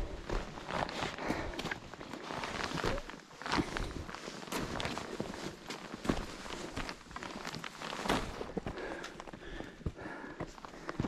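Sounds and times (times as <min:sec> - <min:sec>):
footsteps crunching in snow: 0:00.0 - 0:10.2.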